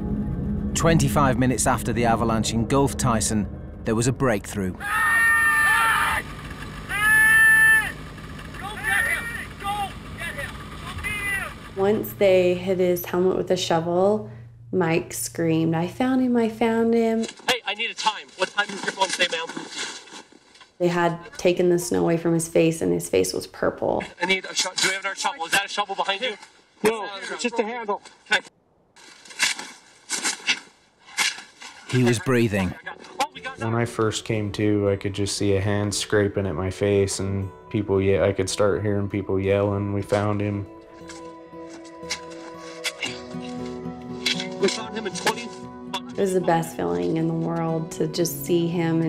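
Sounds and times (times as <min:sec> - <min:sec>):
people shouting high-pitched calls: 0:04.8 - 0:06.2, 0:06.9 - 0:08.0, 0:08.6 - 0:11.6
shovel scraping snow: 0:41.0 - 0:45.6.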